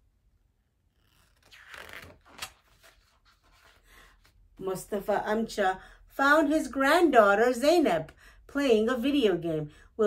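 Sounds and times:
paper page rustling: 0:01.0 - 0:04.4.

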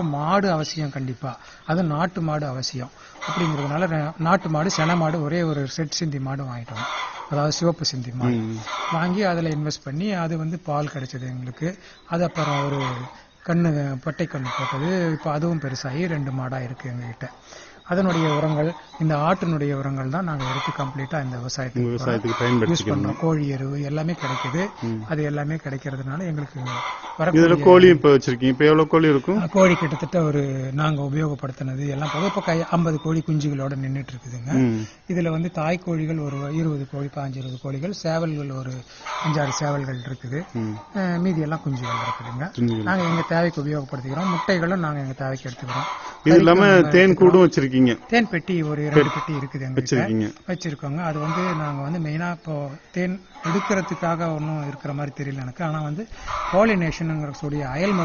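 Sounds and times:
man talking: 0:00.0 - 0:17.3, 0:17.9 - 0:58.0
chicken calling: 0:02.8 - 0:05.7, 0:06.4 - 0:09.6, 0:11.2 - 0:58.0
man speaking: 0:07.4 - 0:17.2, 0:17.9 - 0:58.0.

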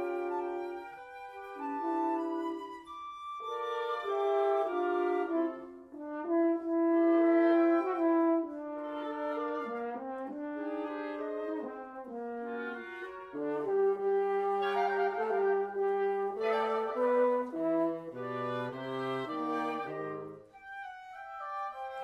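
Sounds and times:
wind quintet playing: 0:00.0 - 0:22.0.

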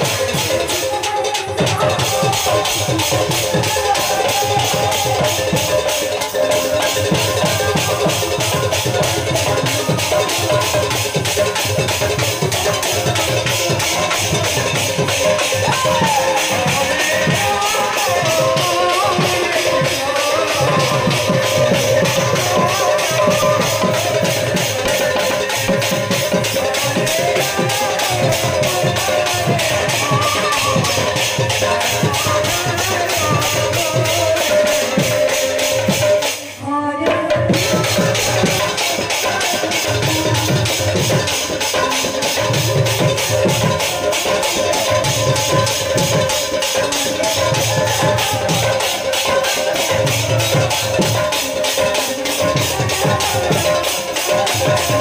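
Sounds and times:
devotional music with fast percussion: 0:00.0 - 0:55.0.

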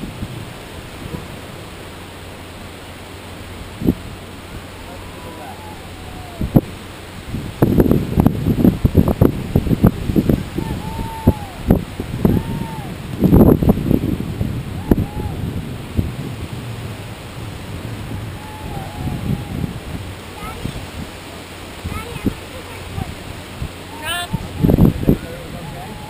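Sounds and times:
surf: 0:00.0 - 0:26.0
wind buffeting microphone: 0:00.0 - 0:26.0.

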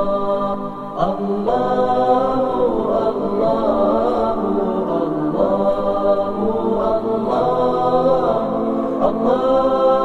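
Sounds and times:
voices chanting: 0:01.0 - 0:10.0.

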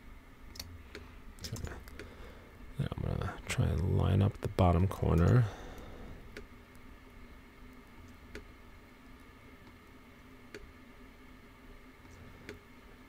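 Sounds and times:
computer mouse clicks: 0:00.5 - 0:02.1, 0:10.5 - 0:10.7, 0:12.0 - 0:12.6.

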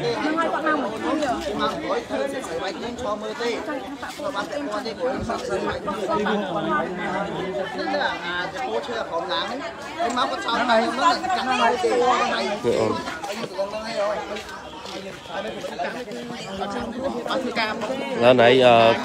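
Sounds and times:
group of people talking: 0:00.0 - 0:19.0.

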